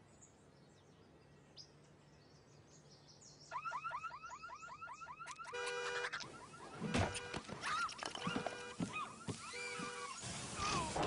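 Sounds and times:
faint birdsong: 0.0 - 11.0
car alarm warbling: 3.6 - 10.2.

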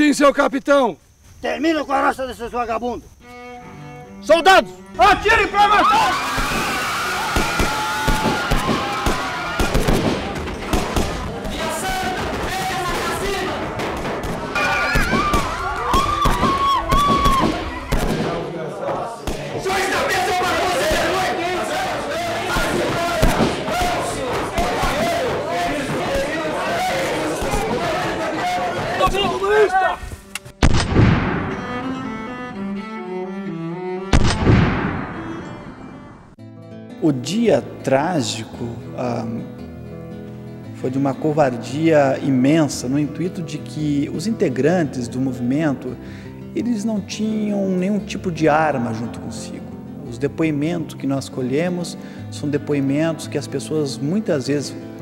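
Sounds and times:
background music: 2.7 - 55.0
slow bowed-string music: 3.2 - 5.2, 31.4 - 41.9
voices crying out: 4.1 - 30.1
high wailing voices: 4.2 - 10.4, 11.1 - 30.0
echoing gunshots: 7.3 - 18.5, 19.3 - 29.4, 30.6 - 31.6, 34.1 - 35.5
rapid gunfire: 7.4 - 18.4, 22.4 - 26.5, 27.3 - 28.2.

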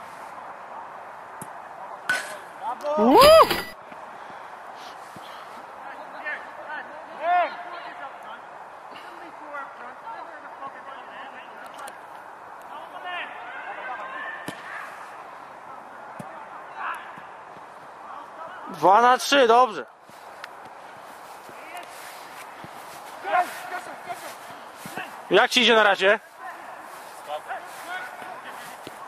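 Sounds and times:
outdoor background noise: 0.0 - 29.0
men calling out: 2.8 - 3.7.

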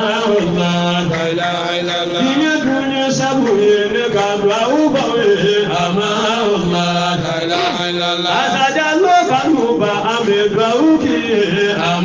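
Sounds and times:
voices chanting devotional song: 0.0 - 12.0.

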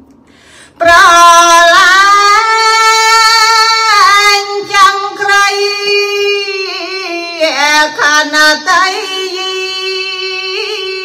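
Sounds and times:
woman chanting into a microphone: 0.8 - 11.0.

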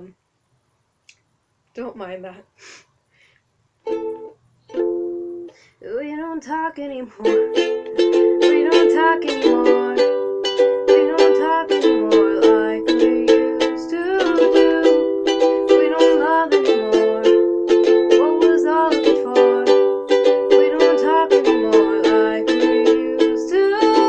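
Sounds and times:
ukulele strumming: 3.8 - 5.5, 7.2 - 24.0.

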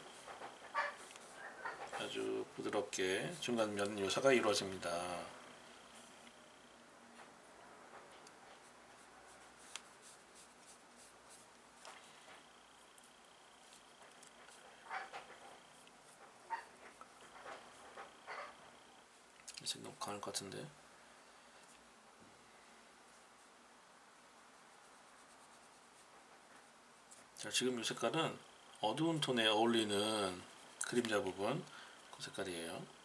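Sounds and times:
low room hiss: 0.0 - 33.0
brush pen strokes on paper: 8.5 - 18.2, 24.6 - 27.3.

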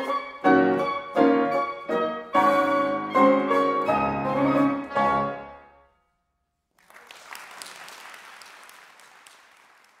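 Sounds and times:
audience applause: 6.8 - 10.0.

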